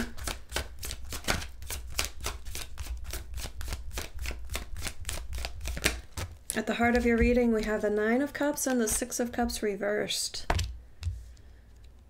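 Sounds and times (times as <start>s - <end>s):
cards being shuffled: 0.0s - 9.0s.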